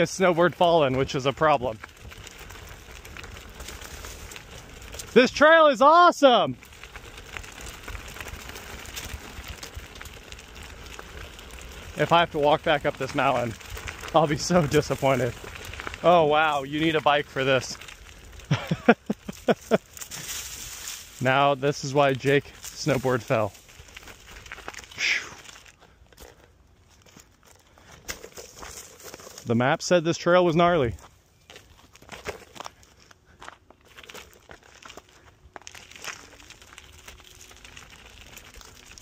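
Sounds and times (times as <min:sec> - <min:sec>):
tyres rolling on dirt trail: 0:00.0 - 0:39.0.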